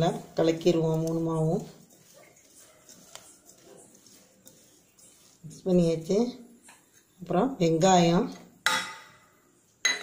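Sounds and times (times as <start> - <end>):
person speaking: 0.0 - 6.5.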